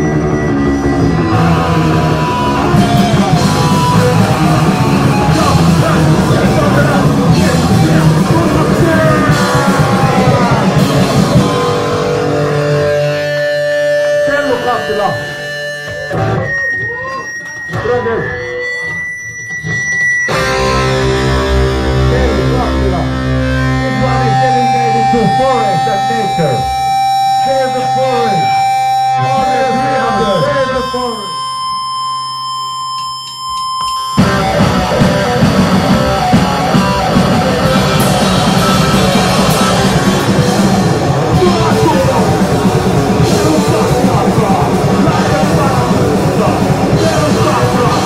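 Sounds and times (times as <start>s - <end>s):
guitar feedback drone: 0.0s - 48.0s
punk band playing: 0.0s - 48.0s.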